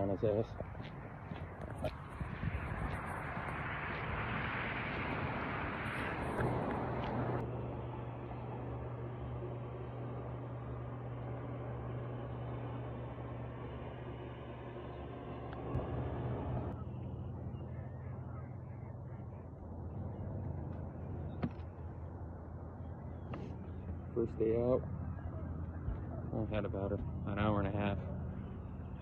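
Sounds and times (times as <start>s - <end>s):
boat motor humming: 0.0s - 29.0s
wind: 0.0s - 29.0s.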